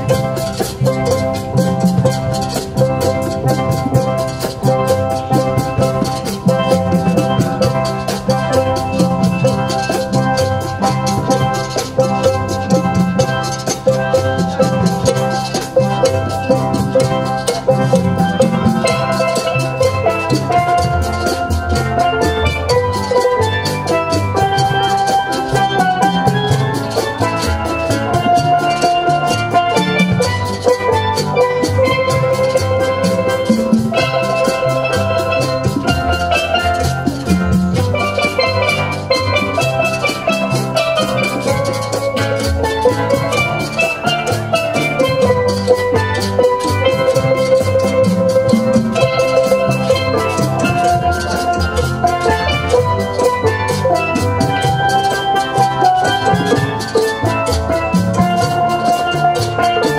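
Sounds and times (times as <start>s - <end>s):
congas: 0.0s - 59.9s
drum kit beat: 0.0s - 59.9s
steel pan melody: 0.0s - 59.9s.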